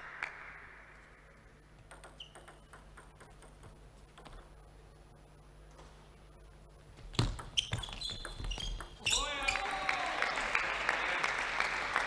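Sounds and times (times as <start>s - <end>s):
table tennis ball bouncing: 1.8s - 4.5s, 7.1s - 9.1s.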